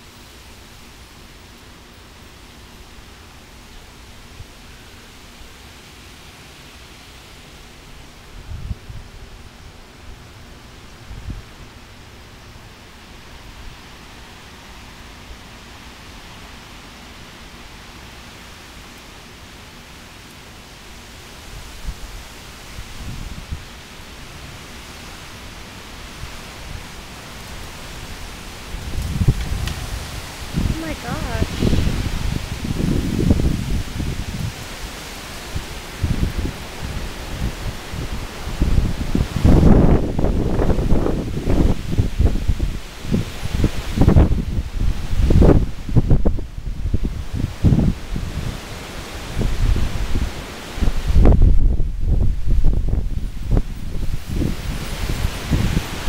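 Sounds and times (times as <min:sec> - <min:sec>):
wind rushing through trees: 0:00.0 - 0:56.0
gusts thumping microphone: 0:28.0 - 0:34.9, 0:49.3 - 0:56.0.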